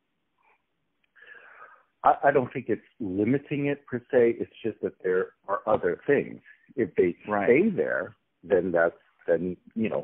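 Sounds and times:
faint breath drawn in: 0:01.2 - 0:02.0
person speaking: 0:01.2 - 0:10.0.

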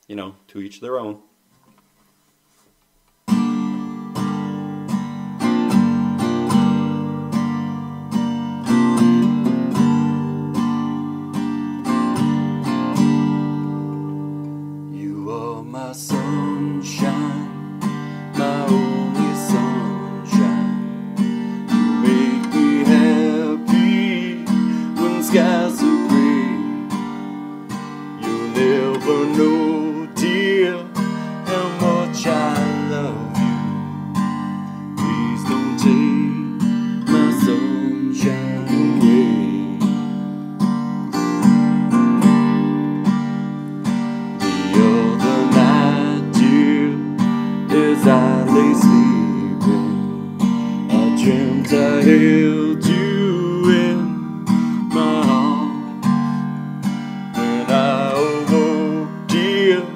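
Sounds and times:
acoustic guitar strumming: 0:02.9 - 0:59.9
man singing: 0:14.9 - 0:27.4, 0:28.0 - 0:34.0, 0:34.8 - 0:40.2, 0:44.4 - 0:56.4, 0:57.3 - 0:59.9.

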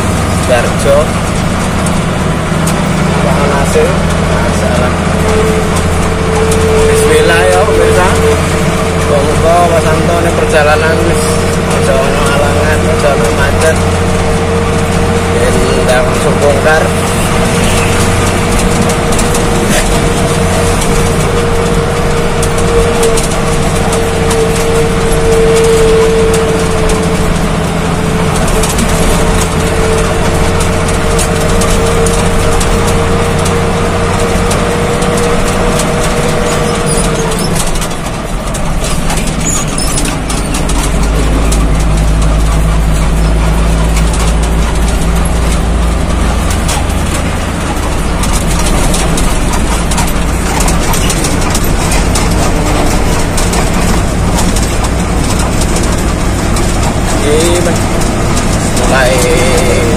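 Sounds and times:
cab noise while driving: 0:00.0 - 0:59.9
steady whine: 0:00.0 - 0:59.9
truck engine rumble: 0:00.0 - 0:59.9.

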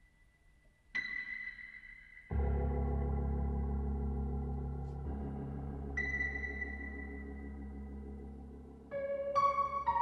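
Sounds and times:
keyboard chords: 0:02.2 - 0:10.0.

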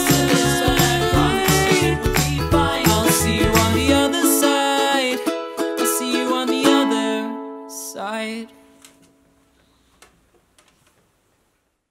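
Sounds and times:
ukulele chord ringing: 0:00.0 - 0:08.0.

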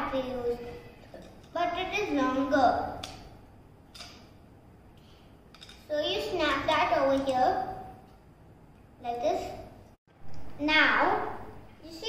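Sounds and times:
child's voice: 0:00.0 - 0:03.0, 0:05.9 - 0:07.8, 0:09.0 - 0:09.7, 0:10.6 - 0:12.0.

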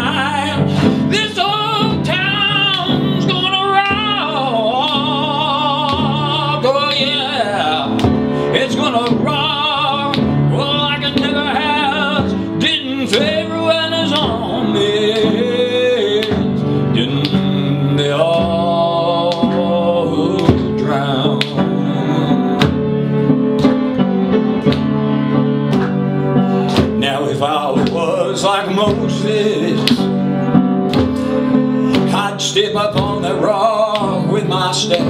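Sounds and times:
person singing: 0:00.0 - 0:22.9, 0:26.7 - 0:30.2, 0:31.8 - 0:35.0
upright piano chords: 0:00.0 - 0:35.0.

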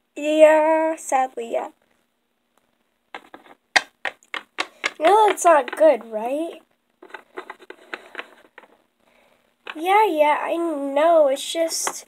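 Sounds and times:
plastic figurines clicking on tabletop: 0:03.2 - 0:08.8.

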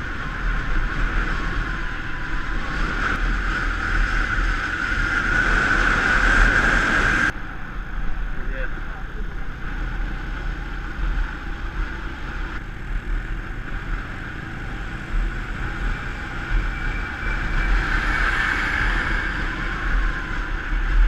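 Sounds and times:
motorcycle engine running: 0:00.0 - 0:21.0
wind buffeting microphone: 0:00.0 - 0:21.0.

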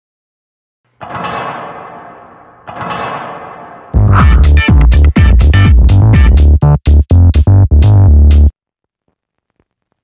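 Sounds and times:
deep percussive impact hits: 0:01.0 - 0:06.2
loud electronic music: 0:03.9 - 0:08.5.

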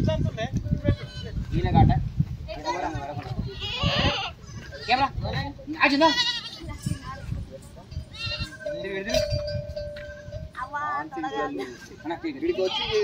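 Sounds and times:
people's voices: 0:00.0 - 0:13.0
goat bleating: 0:00.8 - 0:01.6, 0:02.6 - 0:05.1, 0:05.8 - 0:07.3, 0:08.1 - 0:08.8, 0:09.9 - 0:10.4, 0:11.1 - 0:13.0.

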